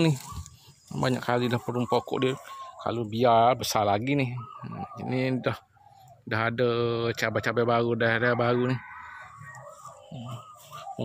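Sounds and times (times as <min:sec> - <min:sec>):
rooster crowing faintly: 0:08.1 - 0:11.0.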